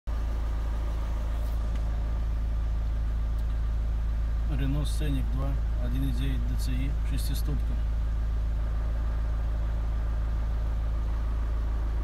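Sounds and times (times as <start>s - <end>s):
diesel engine idling: 0.1s - 12.0s.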